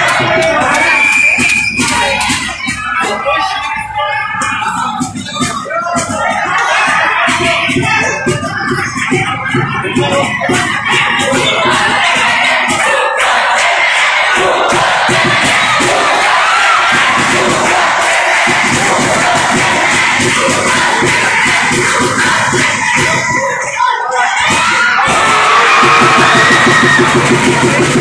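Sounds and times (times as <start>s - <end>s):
spectators shouting and cheering: 0.0s - 28.0s.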